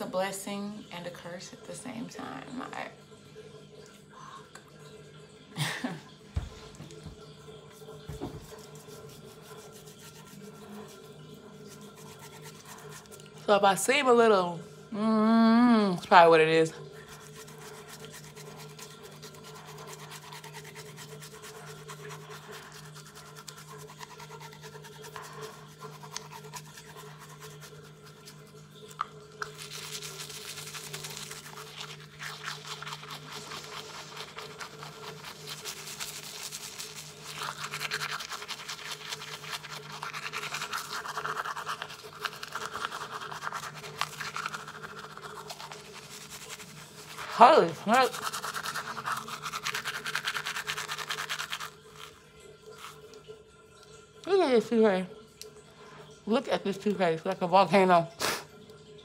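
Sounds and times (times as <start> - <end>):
toothbrush scrubbing tongue: 6.7 - 14.5, 16.0 - 53.3.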